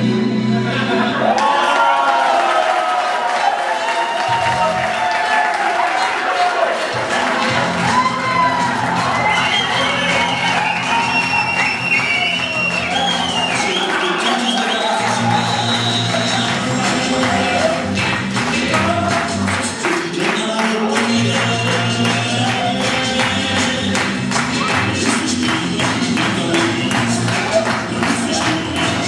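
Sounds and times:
loud dance music: 0:00.0 - 0:01.8, 0:04.2 - 0:29.0.

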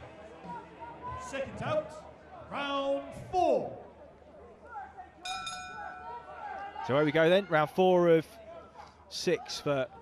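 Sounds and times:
boxing ring bell ringing: 0:05.3 - 0:06.2.

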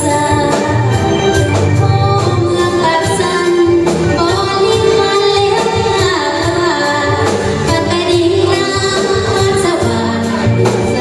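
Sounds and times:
band with electric guitars and drums: 0:00.0 - 0:11.0
woman singing into a microphone: 0:00.0 - 0:11.0.

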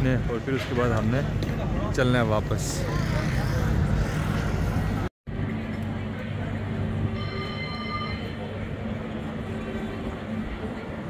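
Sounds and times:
electric tram humming: 0:00.0 - 0:11.0.

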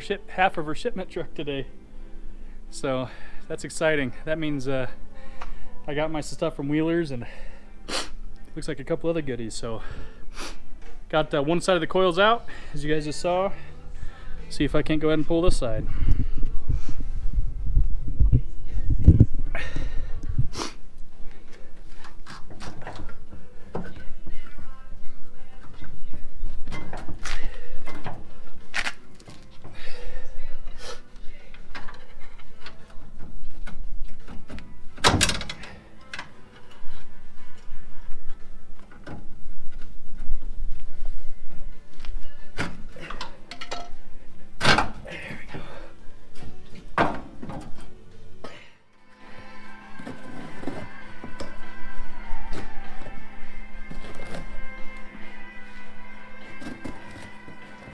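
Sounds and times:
background music: 0:00.0 - 0:57.9.

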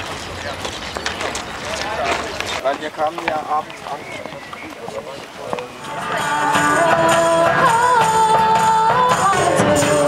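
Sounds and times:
people chattering outdoors: 0:00.0 - 0:10.0.

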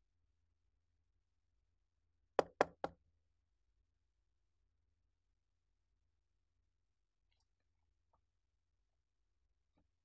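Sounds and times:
knocks on a door: 0:02.4 - 0:03.0.

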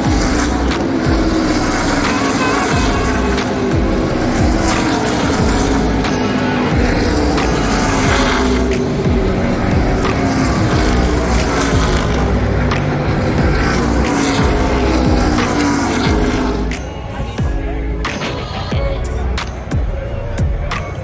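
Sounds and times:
background music: 0:00.0 - 0:21.0
race car engines droning: 0:00.0 - 0:21.0.

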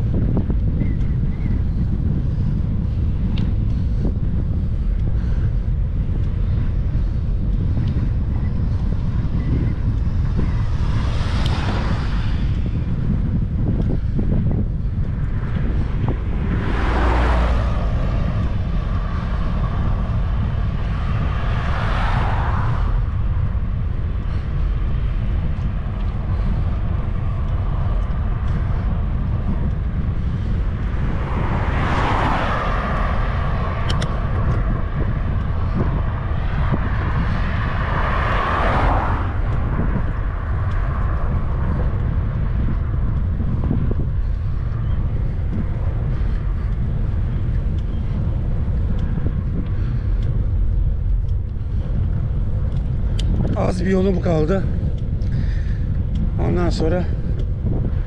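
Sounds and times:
motor vehicles passing: 0:00.0 - 0:58.0
wind buffeting microphone: 0:00.0 - 0:58.0.

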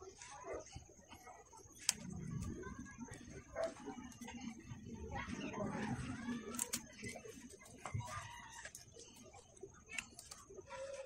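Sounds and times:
plastic parts clicking together: 0:06.5 - 0:07.2, 0:09.9 - 0:10.4.

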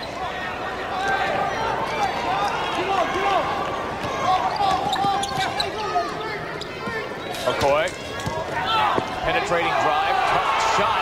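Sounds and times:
arena crowd murmur: 0:00.0 - 0:11.0
sneakers squeaking on hardwood: 0:04.5 - 0:07.2.

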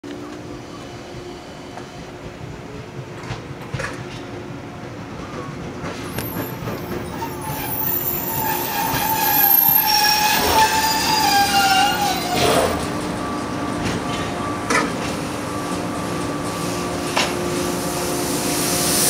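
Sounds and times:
train wheels squealing on rails: 0:05.2 - 0:19.0.

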